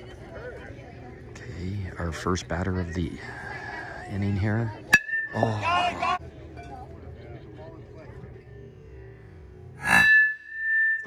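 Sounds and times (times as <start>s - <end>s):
metal bat hitting ball: 4.9s - 5.8s.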